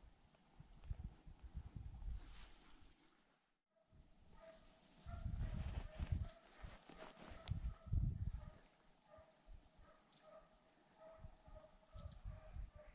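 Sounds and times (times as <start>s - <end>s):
rustling through grass: 4.8s - 7.8s.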